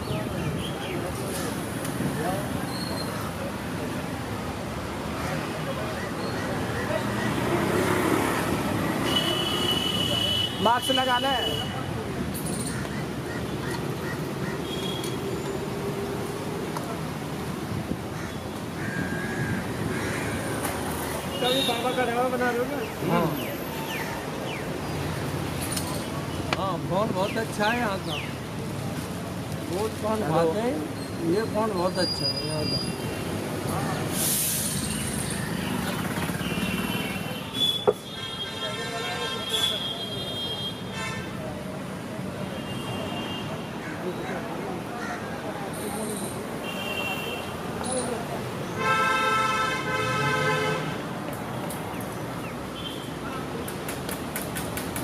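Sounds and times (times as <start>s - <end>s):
road traffic: 0.0s - 55.0s
short sharp hiss: 34.1s - 35.0s.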